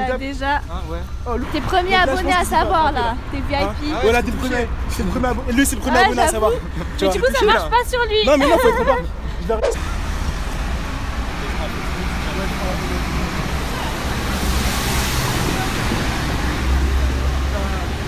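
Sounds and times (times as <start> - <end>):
street traffic rumble: 0.0 - 18.0
vehicle passing: 0.0 - 18.0.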